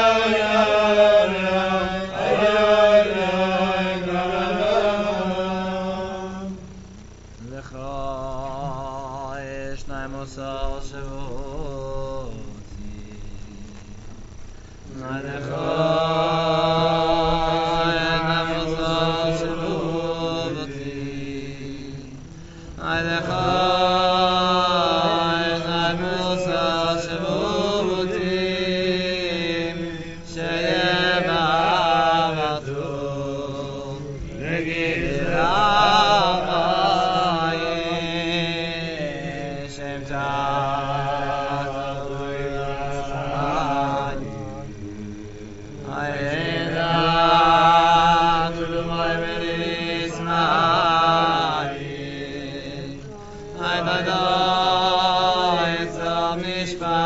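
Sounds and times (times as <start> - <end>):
men singing wordless melody: 0.0 - 6.7, 7.4 - 14.3, 14.9 - 57.0.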